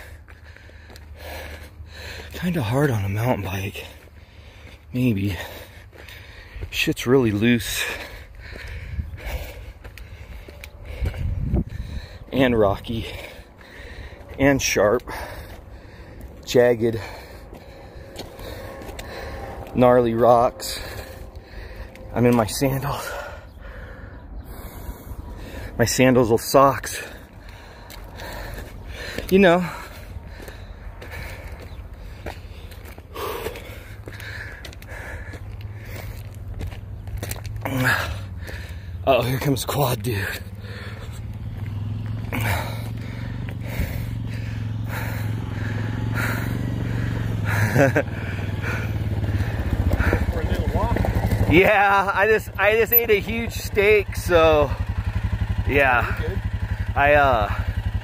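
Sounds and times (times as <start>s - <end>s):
footsteps on gravel: 0.0s - 23.9s, 26.8s - 58.0s
heavy breathing: 0.0s - 26.0s, 26.8s - 58.0s
low steady rumble: 7.4s - 58.0s
low steady drone: 7.8s - 25.9s.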